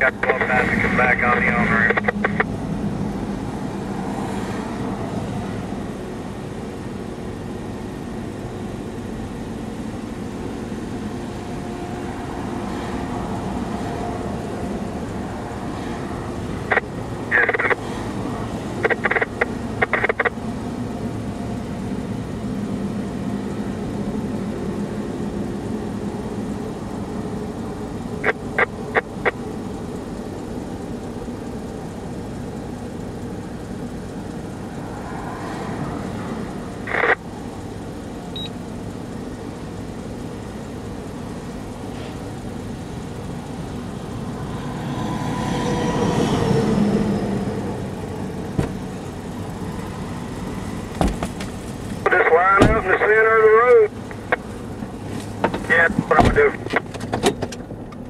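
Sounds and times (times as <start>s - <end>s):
vehicle engine idling: 0.0s - 58.0s.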